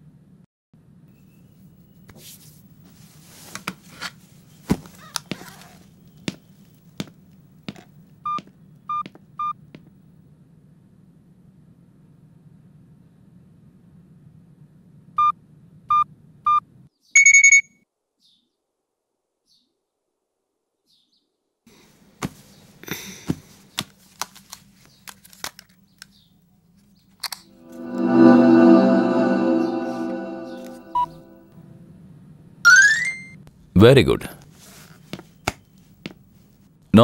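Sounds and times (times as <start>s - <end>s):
phone short beeps: 17.2s - 17.7s.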